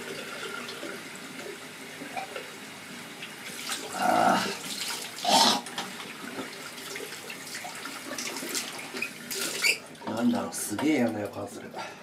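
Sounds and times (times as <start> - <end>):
water running from a tap: 0.0 - 11.7
voice: 10.1 - 11.8.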